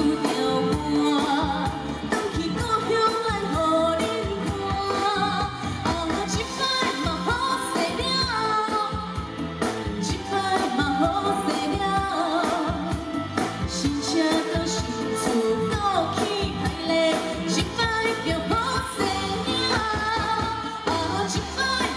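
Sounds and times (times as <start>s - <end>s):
amplified band with drum beat: 0.0s - 21.9s
woman singing pop song: 0.0s - 21.9s.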